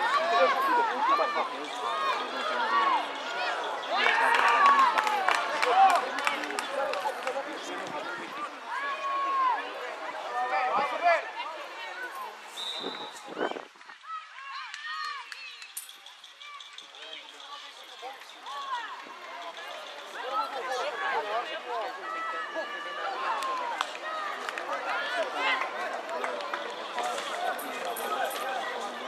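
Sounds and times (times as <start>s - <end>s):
crowd calling and shouting: 0.0s - 29.0s.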